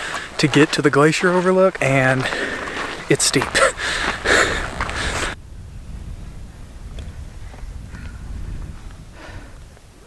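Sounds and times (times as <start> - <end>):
wind rumble on microphone: 2.2 - 10.0
man laughing and breathing: 3.5 - 5.4.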